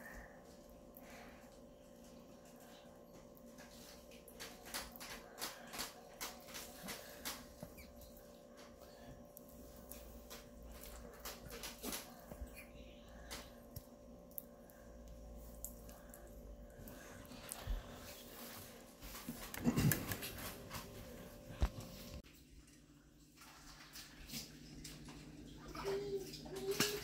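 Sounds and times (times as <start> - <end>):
steady low hum: 0.0 - 26.4.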